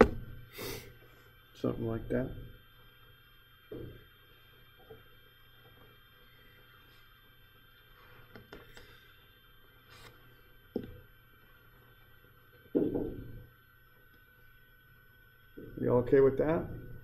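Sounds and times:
room hum: 0.0 - 17.0.

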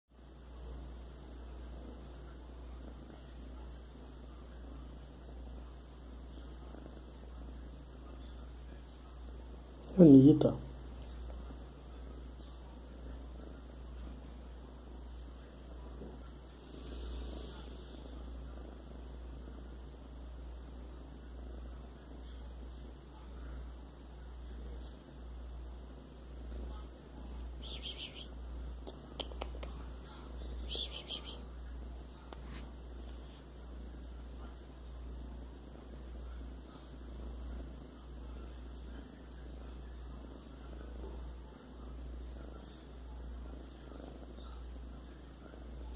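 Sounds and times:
kitten purring: 0.2 - 45.9.

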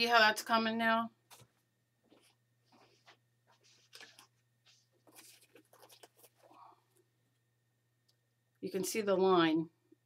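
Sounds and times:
hands scratching and rustling paper: 1.3 - 6.7.

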